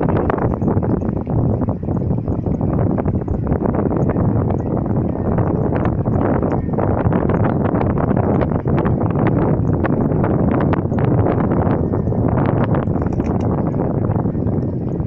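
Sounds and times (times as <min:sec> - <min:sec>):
wind buffeting microphone: 0:00.0 - 0:15.0
small irregular clicks and knocks: 0:12.8 - 0:13.7.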